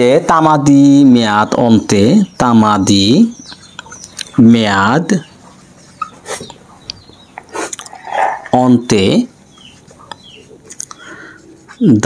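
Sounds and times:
marker squeaking on whiteboard: 5.3 - 10.8, 11.4 - 12.0.

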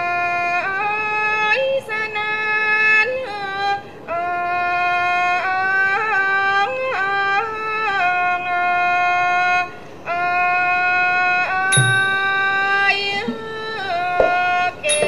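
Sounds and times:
solo melodic singing line: 0.0 - 15.0.

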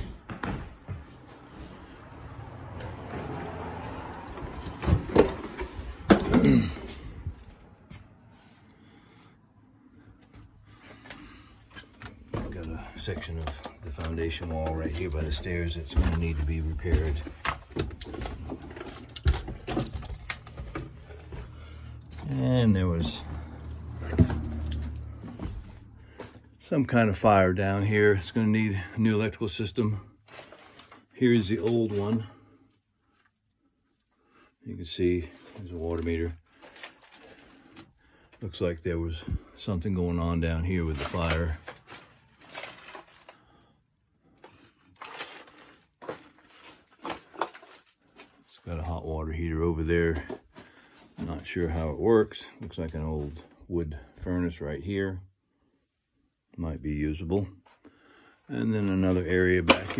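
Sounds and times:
knocks and scuffs on floor: 0.0 - 2.1
crunching and rustling movement: 9.9 - 27.1, 29.7 - 53.6, 57.0 - 59.9.

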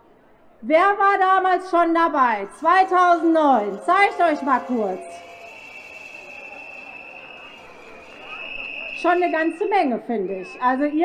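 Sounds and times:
crowd murmur: 2.4 - 11.0
high-pitched whistle-like tone: 2.4 - 11.0.

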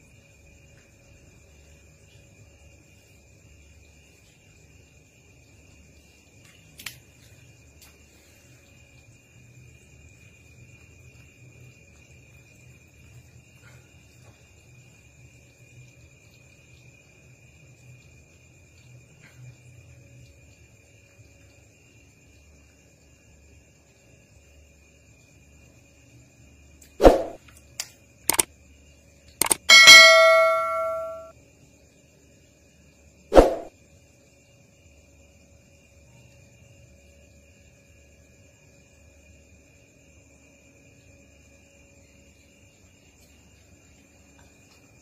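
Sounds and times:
sharp knock: 27.0 - 27.4, 29.4 - 31.3, 33.3 - 33.7
quick clicks: 27.0 - 28.5, 29.4 - 31.3
bright bell ding: 29.4 - 31.3.

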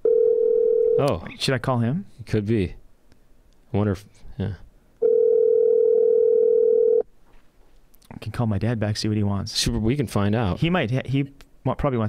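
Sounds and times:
telephone ringback tone: 0.0 - 1.0, 5.0 - 7.0.

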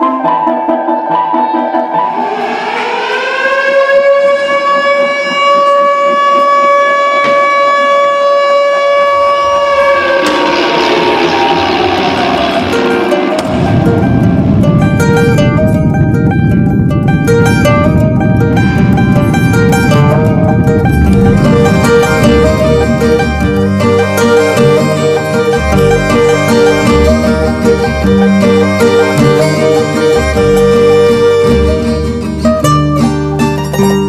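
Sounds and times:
upright piano played fast: 0.0 - 2.4, 13.5 - 33.1
plucked-string music: 0.0 - 2.8, 12.5 - 34.0
siren-like tone: 0.0 - 32.3
loud low rumbling noise: 0.8 - 7.9, 8.7 - 32.6.

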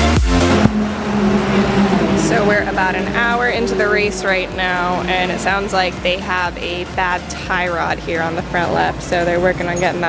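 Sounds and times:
race car engines droning: 0.0 - 10.0
people's voices: 1.1 - 10.0.

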